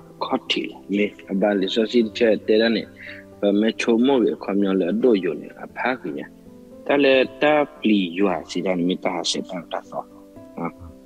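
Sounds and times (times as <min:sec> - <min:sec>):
man speaking over video call: 0:00.2 - 0:11.0.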